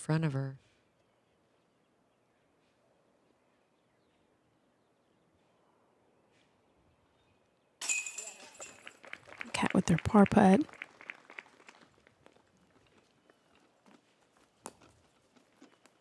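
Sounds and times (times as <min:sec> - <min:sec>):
disc hitting metal chains: 0:07.8 - 0:09.0.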